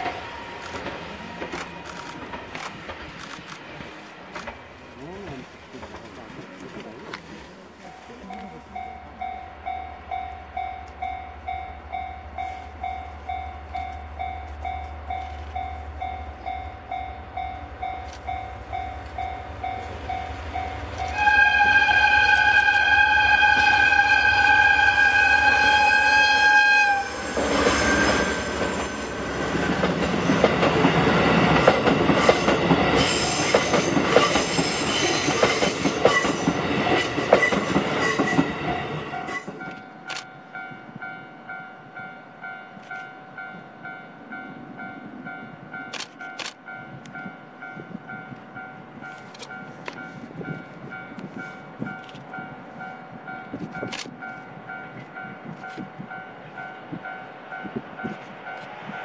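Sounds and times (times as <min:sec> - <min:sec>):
train wheels clicking over rail joints: 0:00.0 - 0:07.2
locomotive horn blast: 0:19.8 - 0:28.8.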